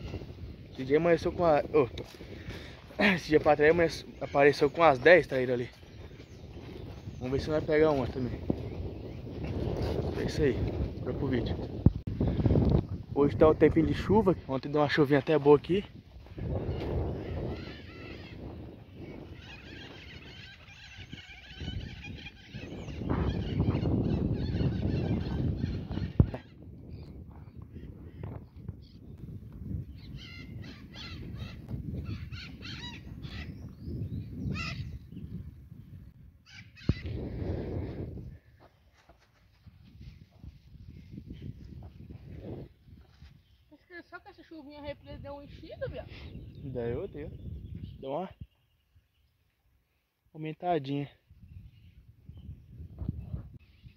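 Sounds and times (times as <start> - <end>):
wind on microphone: 0.0 - 49.3, 51.2 - 53.9.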